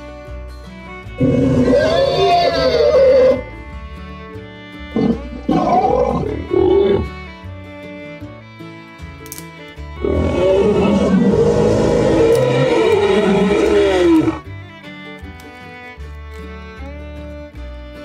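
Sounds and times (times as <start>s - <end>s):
background music with bowed strings: 0.0s - 18.0s
dinosaur roars: 1.2s - 3.4s, 5.0s - 7.2s, 10.0s - 14.4s.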